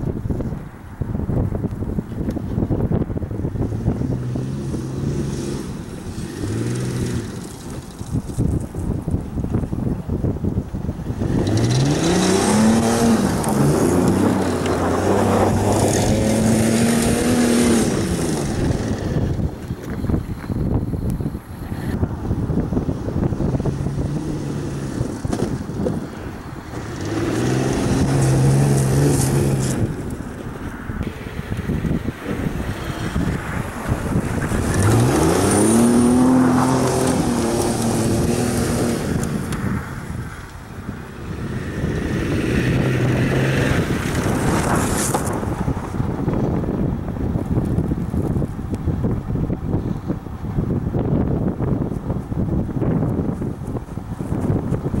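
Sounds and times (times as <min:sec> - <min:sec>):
car engine revving hard: 0:11.2 - 0:19.3, 0:26.7 - 0:29.9, 0:32.2 - 0:39.6, 0:41.4 - 0:45.4.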